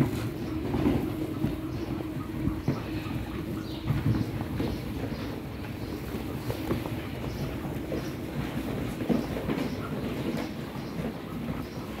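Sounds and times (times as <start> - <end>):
chicks scratching on cardboard: 0.0 - 12.0.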